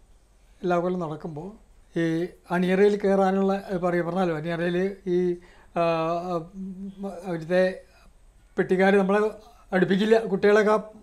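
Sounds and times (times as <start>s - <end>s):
man humming: 5.9s - 7.5s.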